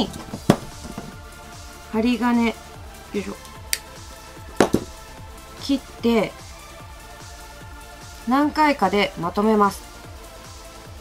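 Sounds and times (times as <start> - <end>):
background music: 0.0 - 11.0
nippers snipping wire: 3.4 - 3.9.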